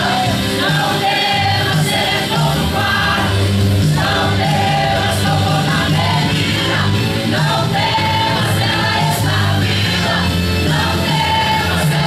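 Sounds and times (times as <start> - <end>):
church choir singing a hymn: 0.0 - 12.0.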